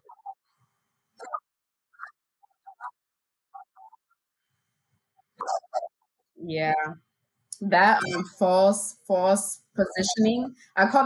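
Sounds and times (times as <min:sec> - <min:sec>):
faint vocal murmurs: 0:05.4 - 0:07.0, 0:07.7 - 0:08.6.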